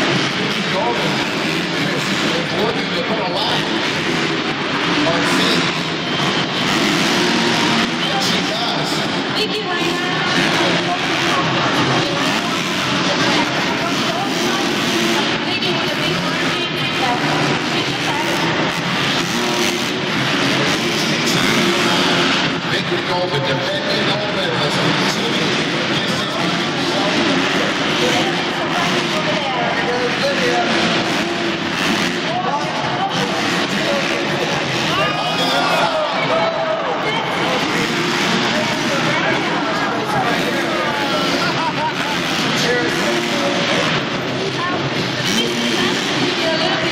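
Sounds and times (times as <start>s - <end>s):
crowd voices din: 0.0s - 46.9s
motocross engines revving: 0.0s - 46.9s.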